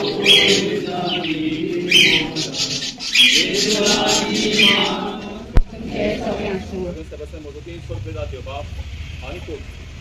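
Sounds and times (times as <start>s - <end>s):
bird chirping: 0.0s - 5.3s
group singing a slow hymn: 0.0s - 7.1s.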